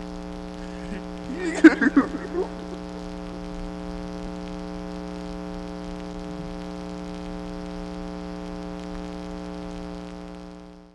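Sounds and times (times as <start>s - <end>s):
crackling hiss: 0.0s - 10.9s
electrical mains hum: 0.0s - 10.9s.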